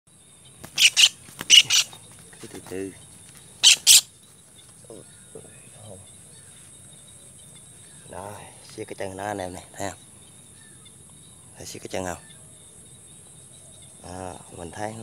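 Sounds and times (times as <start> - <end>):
high insect drone: 0.1 - 15.0
bird harsh distress calls: 0.6 - 2.1, 3.5 - 4.2.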